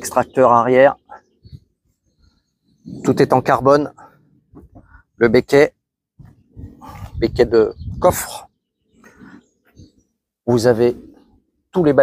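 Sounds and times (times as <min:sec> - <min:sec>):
man speaking: 0:02.9 - 0:04.2, 0:05.2 - 0:05.8, 0:10.5 - 0:11.0, 0:11.7 - 0:12.0.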